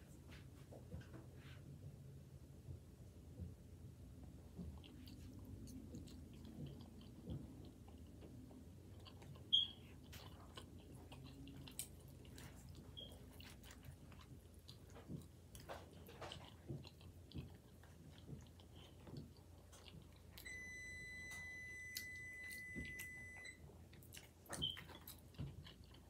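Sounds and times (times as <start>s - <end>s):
wet chewing: 4.4s - 20.6s, 21.2s - 26.0s.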